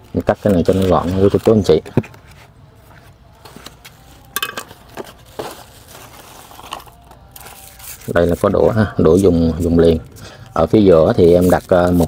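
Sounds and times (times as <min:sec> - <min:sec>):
small objects handled on a table: 0:00.2 - 0:08.1.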